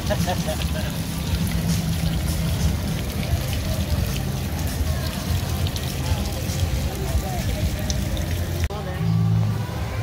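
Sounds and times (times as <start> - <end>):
fountain water splashing: 0.0 - 10.0.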